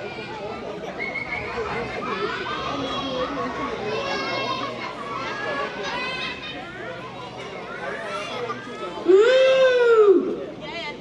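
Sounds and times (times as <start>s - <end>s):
children chattering: 0.0s - 9.3s.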